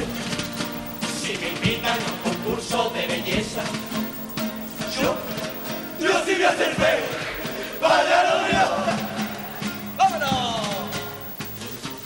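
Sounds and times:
men's chorus singing loudly: 6.0s - 9.3s.

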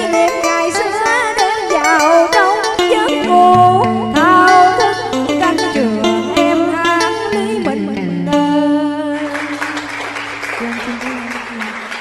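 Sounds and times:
instrumental accompaniment: 0.0s - 12.0s
woman singing: 0.0s - 12.0s
audience applause: 9.3s - 12.0s.

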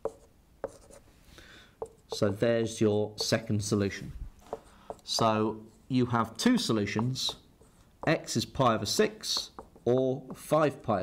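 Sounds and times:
marker pen tapping: 0.0s - 1.0s, 1.8s - 2.4s, 3.2s - 3.5s, 4.4s - 5.4s, 6.5s - 10.5s
marker scratching on whiteboard: 0.0s - 1.1s, 1.8s - 2.4s, 3.1s - 3.8s, 4.4s - 10.6s.

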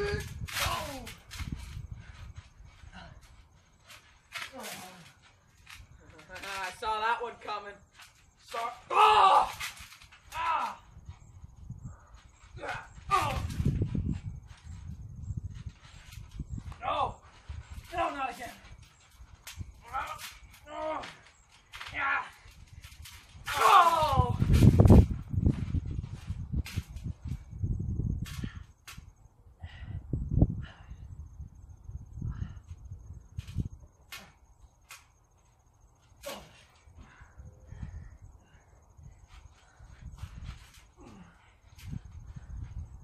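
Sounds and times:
boys shouting and grunting: 8.5s - 10.9s, 12.6s - 13.5s, 23.5s - 24.4s.

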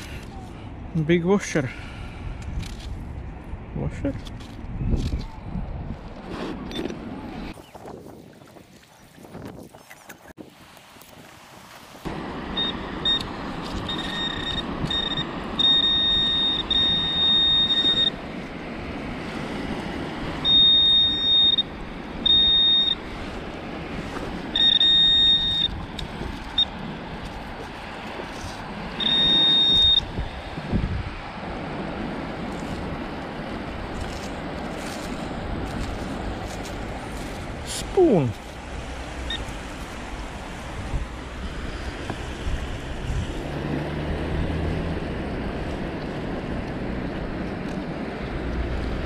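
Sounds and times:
wind noise: 1.8s - 12.1s, 13.0s - 49.0s
pinpointer buzzing beeps: 13.9s - 18.2s, 20.4s - 23.0s, 24.6s - 25.8s, 29.0s - 30.1s.

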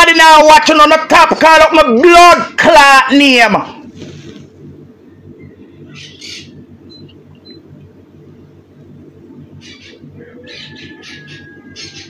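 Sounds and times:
bird squawks and chirps: 5.4s - 7.1s, 9.6s - 12.0s.

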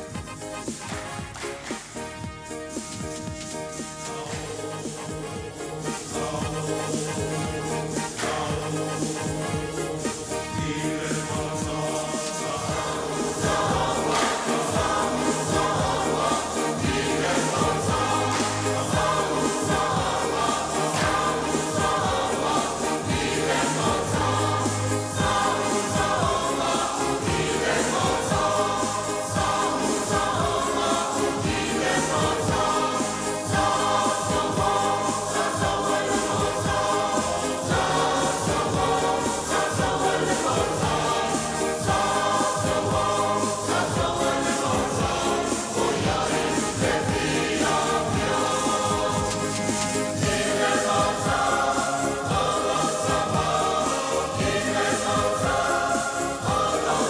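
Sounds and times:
mixed choir singing a hymn: 0.0s - 57.0s.

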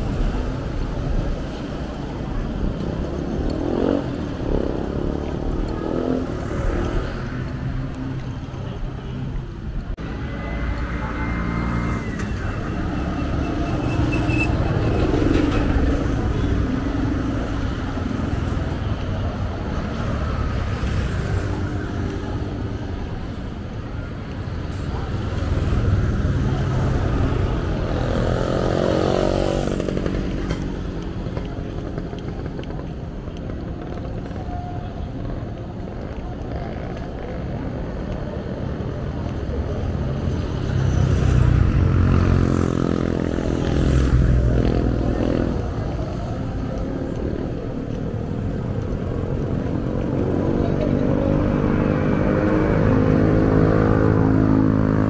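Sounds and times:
motorcycles driving past: 0.1s - 8.9s, 25.0s - 55.0s.

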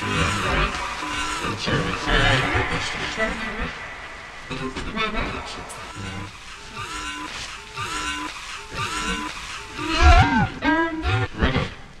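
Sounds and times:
pitch-bent vocal calls: 0.0s - 11.3s.

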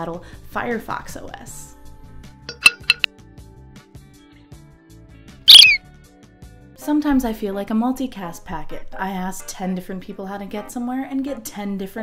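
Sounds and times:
chirp sound effect gliding down: 5.5s - 5.8s.

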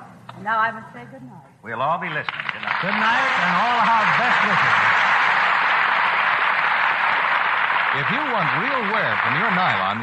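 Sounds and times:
audience applause: 2.1s - 10.0s.

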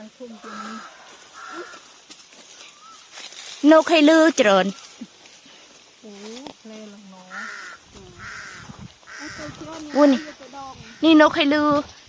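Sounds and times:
bird calling: 0.0s - 5.6s, 6.7s - 11.5s
faint voices: 6.0s - 11.8s.

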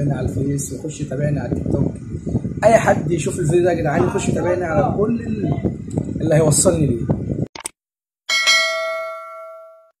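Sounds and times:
notification bell ding: 8.3s - 9.9s.

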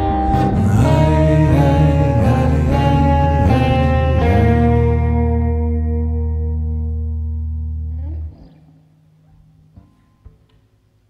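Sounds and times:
guitars and bass chord ringing: 0.0s - 10.2s.

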